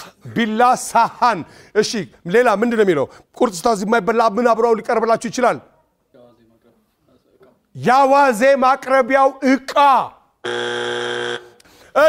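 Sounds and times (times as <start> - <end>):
electronic game-show buzzer: 10.4 - 11.6.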